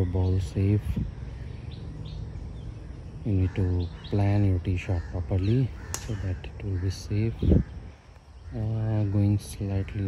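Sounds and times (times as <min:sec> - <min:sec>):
steady low rumble: 0:00.0 - 0:09.8
faint bird chirps: 0:00.0 - 0:10.0.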